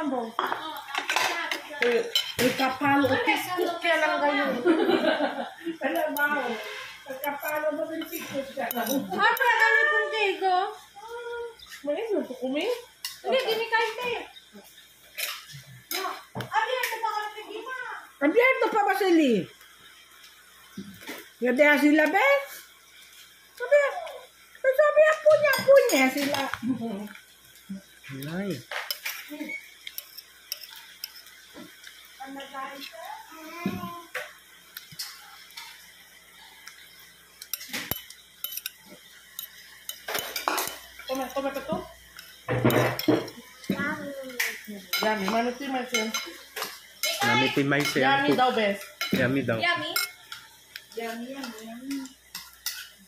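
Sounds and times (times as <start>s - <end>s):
voices: 0.0s - 14.7s
cutlery clinking against dishes: 0.4s - 3.2s, 5.8s - 9.8s, 15.1s - 16.1s, 28.2s - 32.0s, 37.4s - 53.0s.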